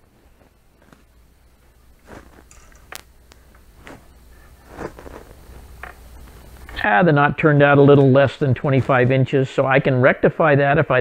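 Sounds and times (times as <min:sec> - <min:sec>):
string rustling and scraping: 0:00.0 - 0:06.8, 0:07.9 - 0:09.4.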